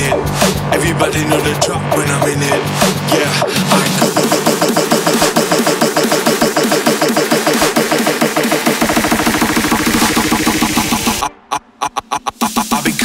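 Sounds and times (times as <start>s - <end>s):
gliding synth riff: 1.0s - 13.0s
fast low synth pulse: 4.0s - 12.8s.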